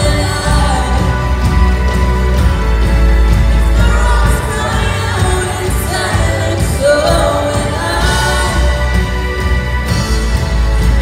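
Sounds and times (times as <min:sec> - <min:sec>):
lead singer singing: 0:00.0 - 0:02.3, 0:03.5 - 0:09.8
amplified band with strong bass: 0:00.0 - 0:11.0.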